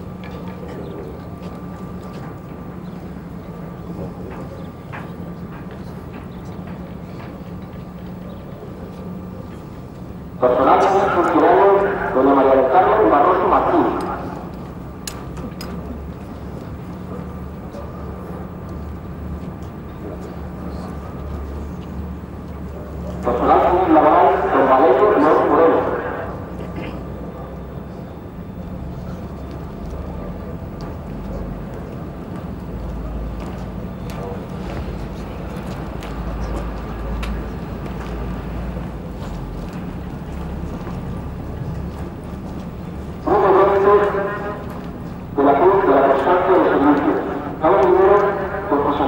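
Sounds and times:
low outdoor rumble: 0.1s - 49.0s.

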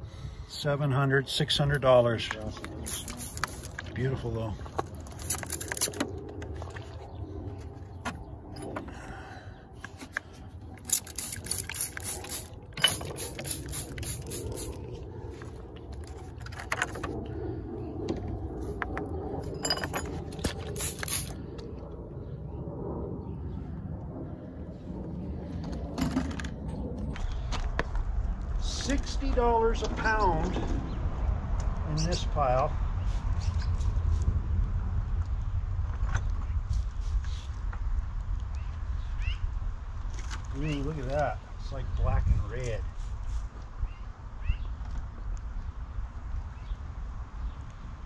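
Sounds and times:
steady low rumble: 0.0s - 48.0s
rocks clinking and scraping: 1.8s - 7.0s, 9.9s - 14.7s, 19.4s - 21.4s.

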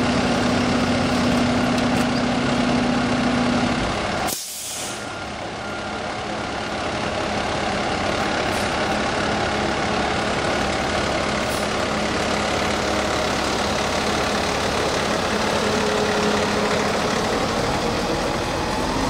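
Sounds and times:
diesel truck engines idling: 0.0s - 19.0s.

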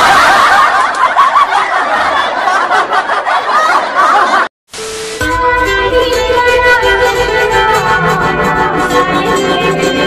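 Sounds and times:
loud laughter: 0.0s - 4.5s.

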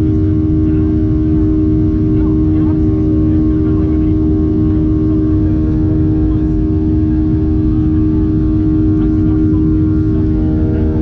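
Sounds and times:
jet engine cabin drone: 0.0s - 11.0s.

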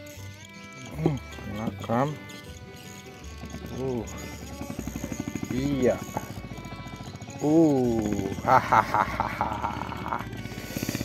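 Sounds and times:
background music held tones: 0.0s - 11.0s.

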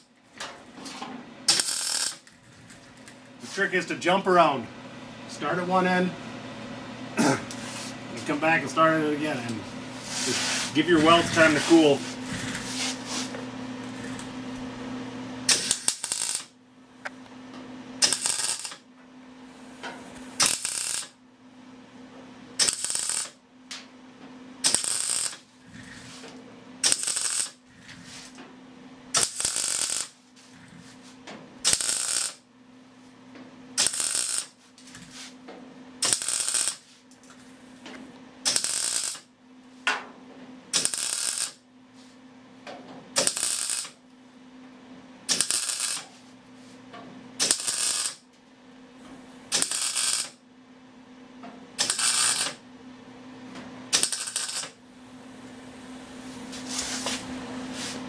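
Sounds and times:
welder low hum: 1.4s - 21.6s, 22.5s - 23.9s, 24.6s - 39.3s, 40.7s - 41.6s, 43.2s - 44.0s, 45.2s - 46.3s, 47.4s - 48.2s, 49.0s - 50.4s, 51.8s - 52.6s, 53.9s - 58.0s
welding arc crackle: 1.5s - 3.2s, 15.5s - 16.6s, 18.0s - 18.8s, 20.2s - 21.2s, 22.6s - 23.4s, 24.6s - 26.2s, 26.8s - 28.3s, 29.1s - 30.9s, 31.6s - 32.4s, 33.8s - 35.1s, 36.0s - 36.9s, 38.5s - 39.3s, 40.8s - 41.6s, 43.2s - 44.0s, 45.3s - 46.2s, 47.4s - 48.2s, 49.5s - 50.4s, 51.8s - 52.6s, 53.9s - 54.8s.

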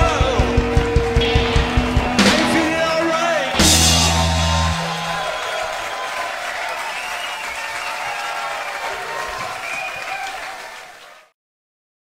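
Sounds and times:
rock band held note: 0.0s - 6.4s
audience applauding and cheering: 0.0s - 11.4s.

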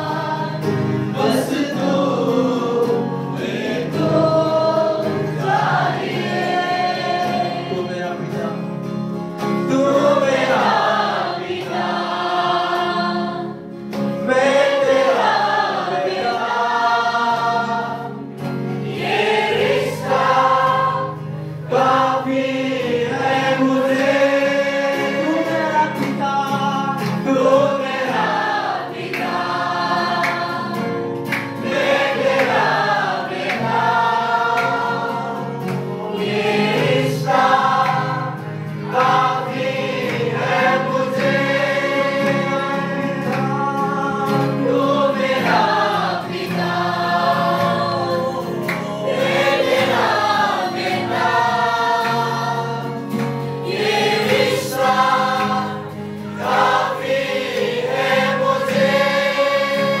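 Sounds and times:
choir singing worship song: 0.0s - 60.0s.

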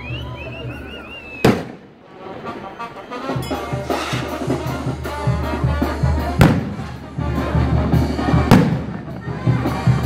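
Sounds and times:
loud firework bang: 1.4s - 1.9s, 6.4s - 7.0s, 8.4s - 9.0s.

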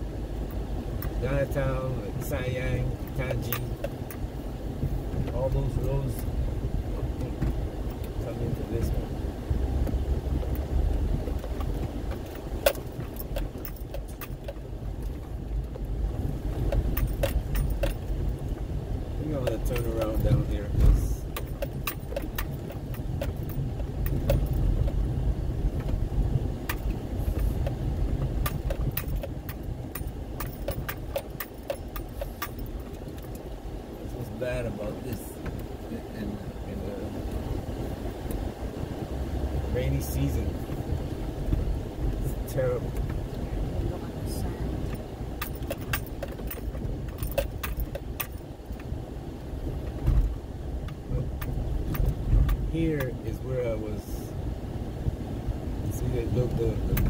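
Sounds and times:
car rumbling on dirt road: 0.0s - 57.0s
clicks and rattles: 9.8s - 15.9s, 16.5s - 18.6s, 19.3s - 25.0s, 26.6s - 33.5s, 44.8s - 48.9s.

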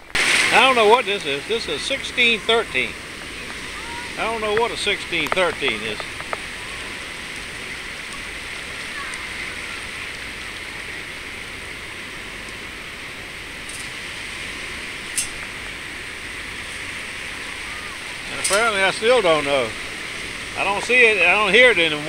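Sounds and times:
shallow water sloshing: 0.0s - 22.0s.

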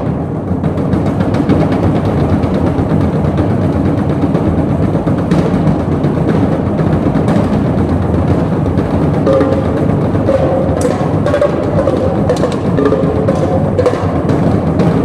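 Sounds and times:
drums and timpani rumbling: 0.0s - 15.0s.

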